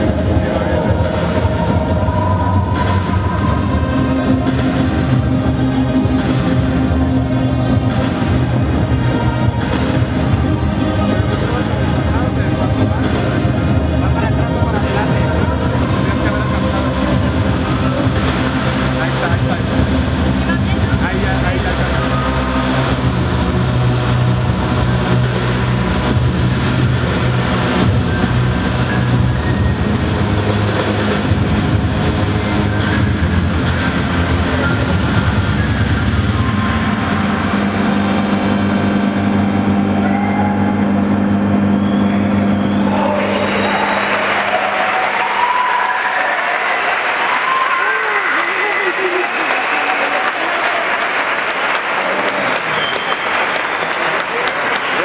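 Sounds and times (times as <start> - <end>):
crowd cheering and applauding: 0.0 - 24.5, 39.8 - 55.0
electronic drones and pulses: 0.0 - 47.8.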